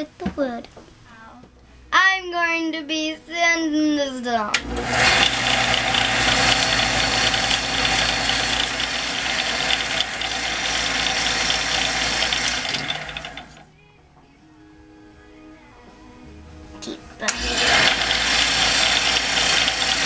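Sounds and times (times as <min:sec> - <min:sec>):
disc sander motor hum: 0:04.6 - 0:13.6, 0:17.3 - 0:20.0
scratchy sanding of wood: 0:17.4 - 0:20.0.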